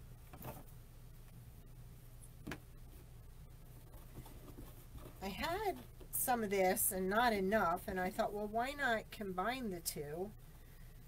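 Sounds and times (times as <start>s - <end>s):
steady low hum: 0.0s - 11.0s
soft rustles and taps: 3.9s - 6.2s
woman speaking: 5.2s - 10.4s.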